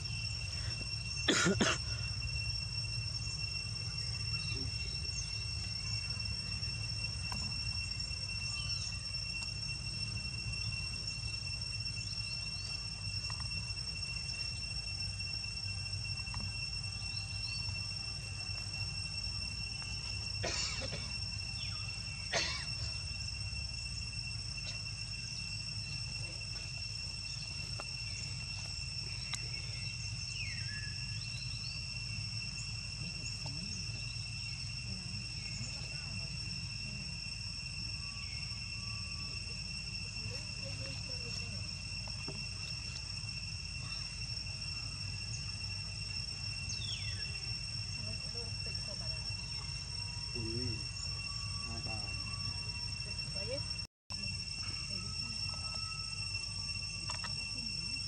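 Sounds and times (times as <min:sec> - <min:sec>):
insects droning: 0:00.0 - 0:58.0.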